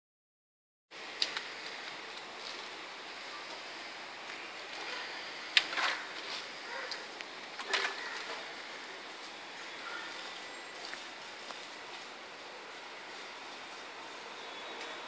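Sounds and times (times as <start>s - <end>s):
outdoor background hiss: 0.9s - 15.0s.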